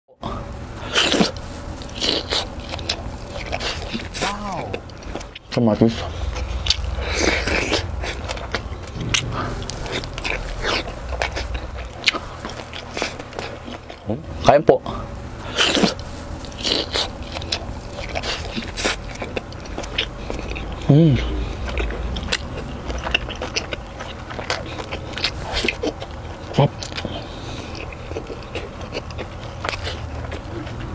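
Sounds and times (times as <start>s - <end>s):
chewing clicks and smacks: 15.6s - 20.9s, 21.6s - 30.9s.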